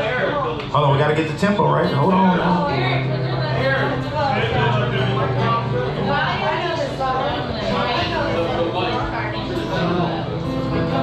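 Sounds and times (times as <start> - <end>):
acoustic guitar playing: 0.0 - 11.0.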